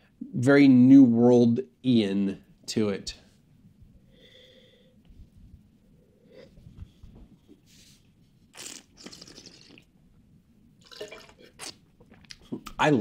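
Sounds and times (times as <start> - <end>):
wine slurping: 8.6 - 9.9, 10.8 - 12.7.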